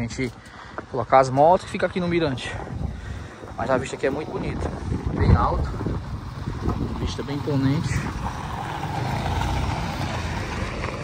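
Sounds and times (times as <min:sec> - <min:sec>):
pickup truck driving past: 0:06.1 - 0:11.0.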